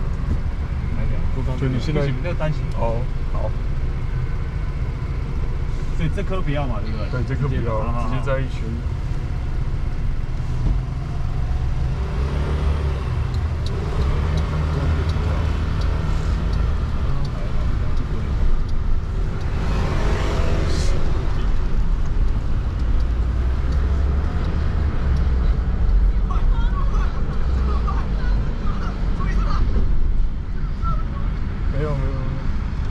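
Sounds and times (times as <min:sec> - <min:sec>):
car engine rumble and road noise: 0:00.0 - 0:32.9.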